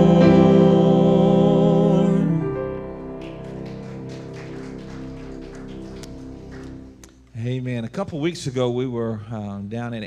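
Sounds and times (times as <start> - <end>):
electric keyboard sustained chords: 0.0 - 7.1.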